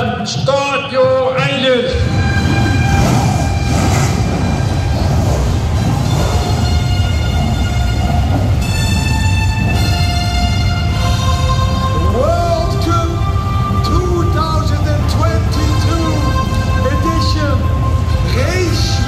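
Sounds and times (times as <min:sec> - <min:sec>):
race car engines rumbling: 0:00.0 - 0:19.0
dramatic music: 0:01.6 - 0:19.0
rising pitch glides: 0:01.9 - 0:19.0.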